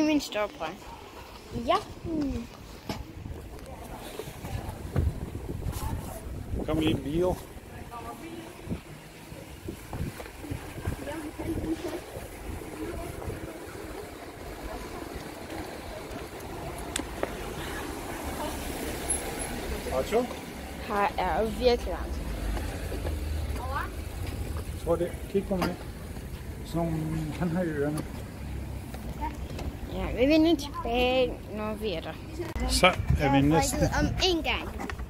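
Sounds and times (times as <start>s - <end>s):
low rumble of street traffic: 0.0s - 35.0s
wind rumbling on microphone: 3.0s - 17.5s, 32.6s - 35.0s.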